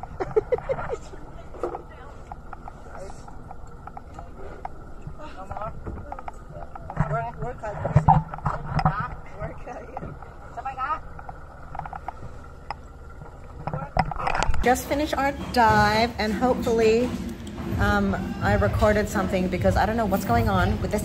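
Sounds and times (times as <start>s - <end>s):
metal tanks knocking and clanking: 13.6s - 21.0s.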